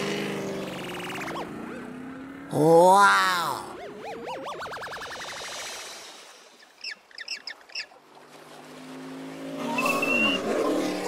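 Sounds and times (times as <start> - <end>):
car engine and tyre noise: 0.0 - 11.0
wobbling electronic warble: 0.6 - 1.8, 3.1 - 6.1, 9.6 - 11.0.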